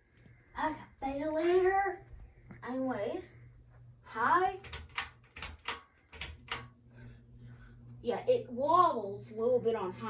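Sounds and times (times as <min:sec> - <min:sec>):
ceiling fan motor hum: 0:00.0 - 0:10.0
sharp clicks: 0:04.6 - 0:06.8.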